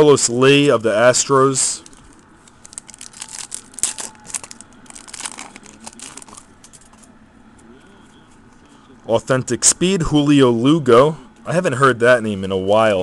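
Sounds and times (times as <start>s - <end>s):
foil wrapper crinkling and tearing: 1.8s - 7.1s.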